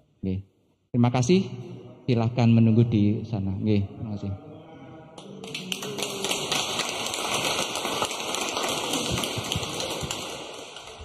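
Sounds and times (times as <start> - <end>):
congregation applauding: 5.2 - 11.0.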